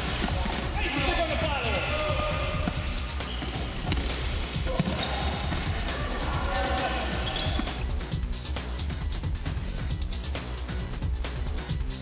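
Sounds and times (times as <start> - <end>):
background music: 0.0 - 12.0
ball on hard court: 2.6 - 5.8
players shouting: 4.6 - 7.6.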